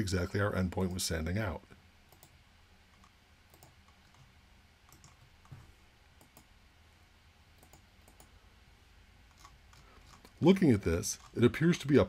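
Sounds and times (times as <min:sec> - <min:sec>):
faint computer mouse clicks: 0:03.0 - 0:04.3, 0:04.9 - 0:05.6, 0:07.6 - 0:08.3.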